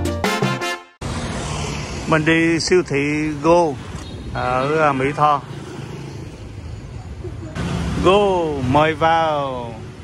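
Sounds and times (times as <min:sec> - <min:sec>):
road traffic rumble: 0:01.0 - 0:10.0.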